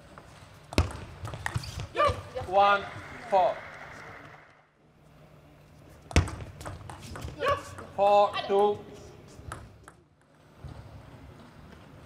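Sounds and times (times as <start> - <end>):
table tennis ball bouncing: 0.7 - 2.6, 6.1 - 8.2, 9.4 - 10.4.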